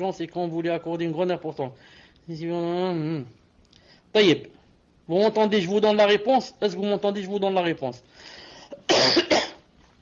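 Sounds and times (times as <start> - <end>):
faint breath: 1.8 - 2.2, 8.1 - 8.8
man coughing: 8.7 - 9.7.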